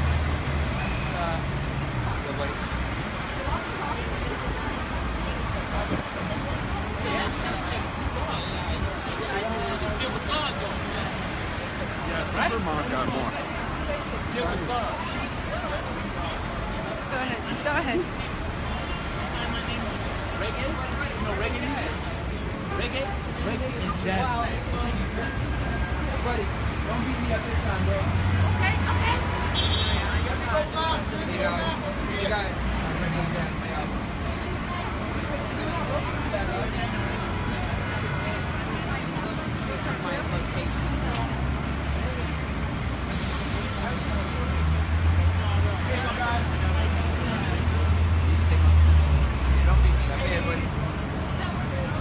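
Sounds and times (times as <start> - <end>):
chatter of passers-by: 0.0 - 52.0
traffic engine rumble: 0.0 - 52.0.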